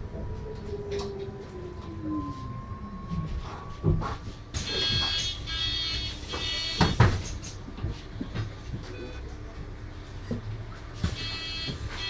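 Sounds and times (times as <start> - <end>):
low rumble of bus: 0.0 - 12.0
bus door warning buzzer: 4.6 - 7.0, 11.1 - 12.0.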